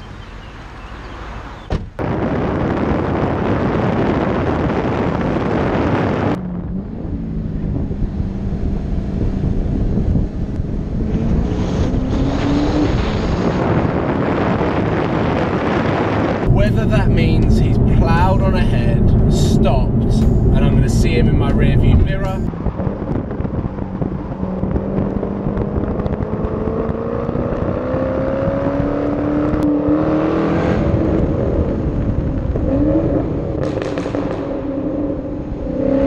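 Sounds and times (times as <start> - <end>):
wind buffeting microphone: 0.0 - 36.0
car engine accelerating: 4.1 - 36.0
person speaking: 16.5 - 22.5.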